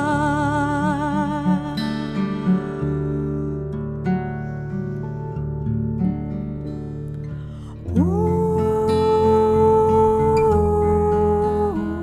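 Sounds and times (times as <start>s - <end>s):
acoustic guitar picking chords: 0.0s - 12.0s.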